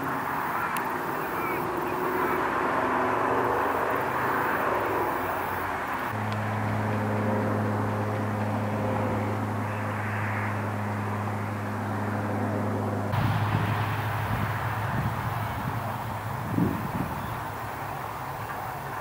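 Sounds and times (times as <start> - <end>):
distant traffic rumble: 0.0 - 19.0
low engine-like hum: 0.0 - 19.0.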